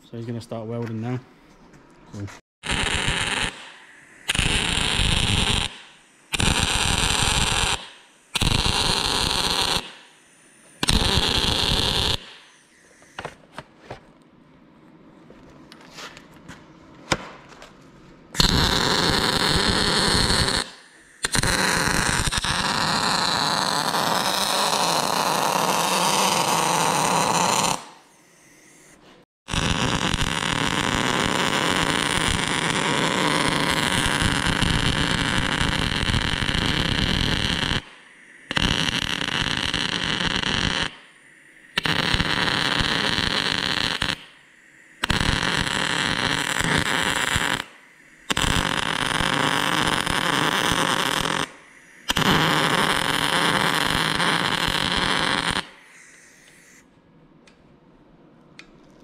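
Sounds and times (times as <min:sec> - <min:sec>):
welder arc crackling: 0:02.6 - 0:13.4, 0:18.4 - 0:28.8, 0:29.5 - 0:56.8.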